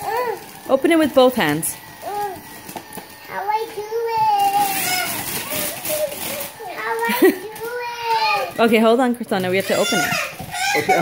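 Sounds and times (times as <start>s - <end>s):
wrapping paper rustling and tearing: 0.0s - 11.0s.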